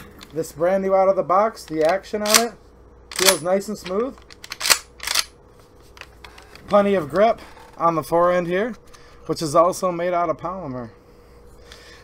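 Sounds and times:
shotgun pump action clacks: 0:03.1 - 0:03.4, 0:04.4 - 0:05.3.

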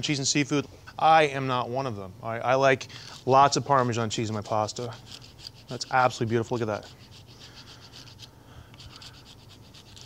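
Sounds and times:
cheese scraping on a grater: 0:03.0 - 0:10.0.

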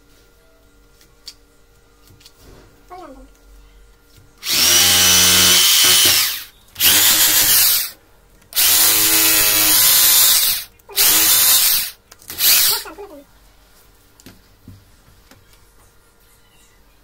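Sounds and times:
power drill boring into masonry: 0:04.4 - 0:08.0, 0:08.6 - 0:12.8.

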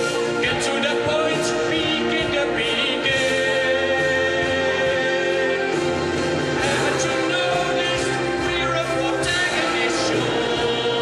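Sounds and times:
duet singing with orchestra: 0:00.0 - 0:11.0.

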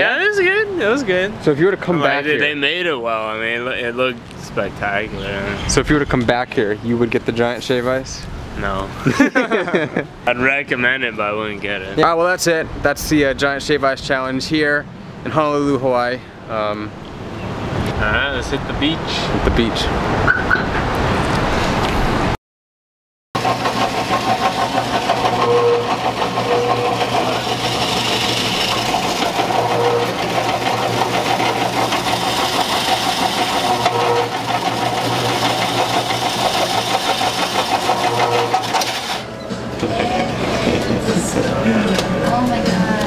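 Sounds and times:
ice shaving machine running: 0:23.4 - 0:39.3.

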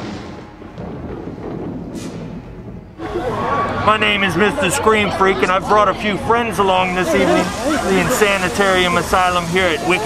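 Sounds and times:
low rolling thunder rumble: 0:00.0 - 0:04.5.

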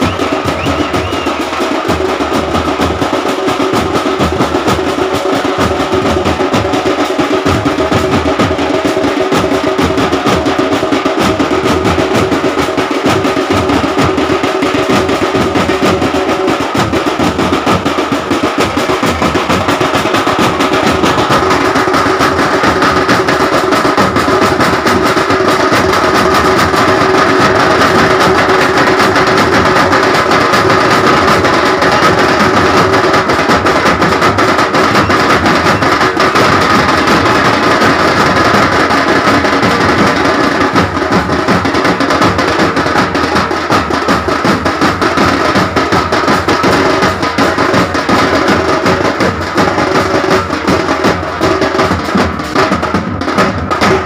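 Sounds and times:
music with fast dense drumming: 0:00.0 - 0:54.0.

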